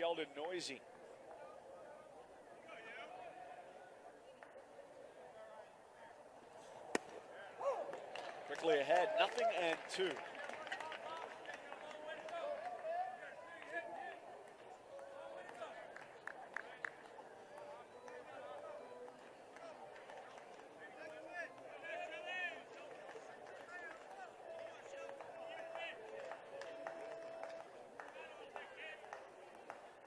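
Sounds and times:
fans talking and calling out: 0:00.0 - 0:30.0.

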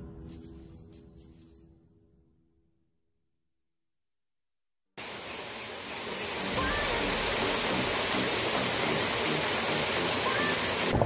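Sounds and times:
steady rushing water noise: 0:05.0 - 0:11.0.

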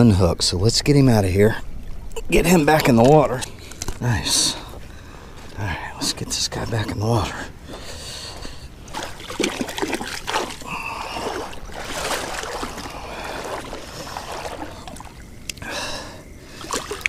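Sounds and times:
water splashing and sloshing: 0:00.9 - 0:05.6, 0:06.5 - 0:17.0
person breathing heavily: 0:04.5 - 0:05.6, 0:07.4 - 0:09.2, 0:10.5 - 0:16.9.

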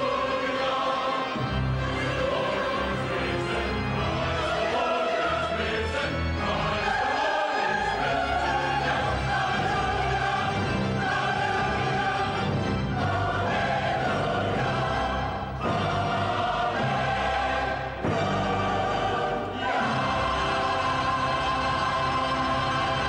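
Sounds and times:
mixed choir singing: 0:00.0 - 0:23.0
orchestral accompaniment: 0:00.0 - 0:23.0.

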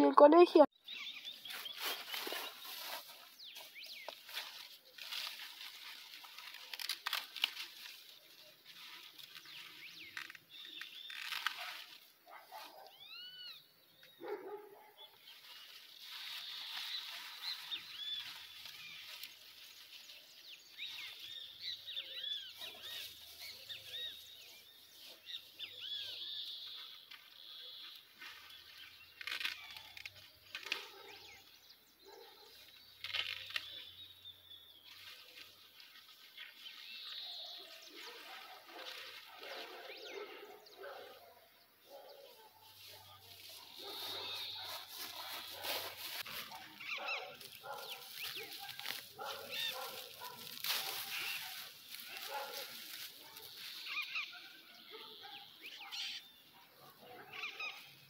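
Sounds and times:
birds chirping: 0:00.0 - 0:58.0
corn plants rustling and snapping: 0:01.5 - 0:12.1, 0:15.4 - 0:20.2, 0:26.6 - 0:31.0, 0:32.9 - 0:34.0, 0:38.2 - 0:39.6, 0:43.3 - 0:54.2.

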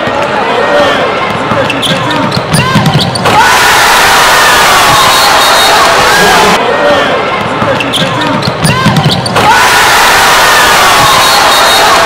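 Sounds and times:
players' voices: 0:00.0 - 0:03.7, 0:05.0 - 0:09.6
basketball dribbling on wooden floor: 0:01.6 - 0:03.2.

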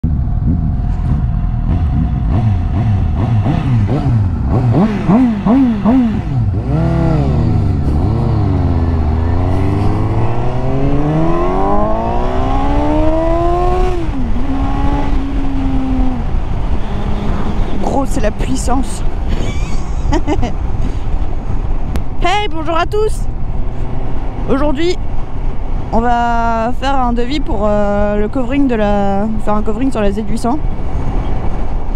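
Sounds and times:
motorcycle engine revving: 0:00.0 - 0:18.4.

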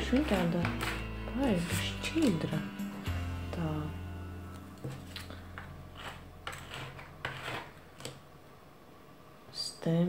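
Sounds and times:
stamper scuffing on metal plate: 0:00.1 - 0:01.8, 0:04.8 - 0:08.2.

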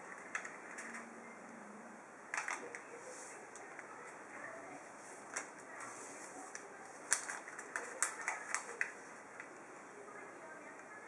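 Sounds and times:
paper folding crackles: 0:05.0 - 0:09.5.

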